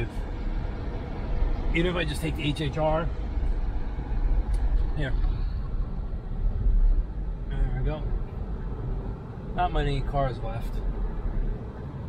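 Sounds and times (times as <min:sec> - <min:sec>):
road and tyre rumble in car cabin: 0:00.0 - 0:12.0.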